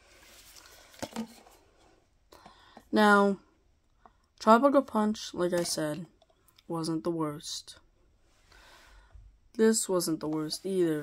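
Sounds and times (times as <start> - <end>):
plastic bottles being handled: 0.0 - 3.0, 5.2 - 6.4.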